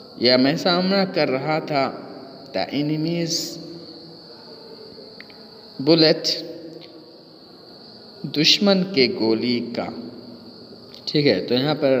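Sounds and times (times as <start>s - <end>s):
man speaking: 0.2s - 3.7s, 5.8s - 6.5s, 8.2s - 10.1s, 11.1s - 12.0s.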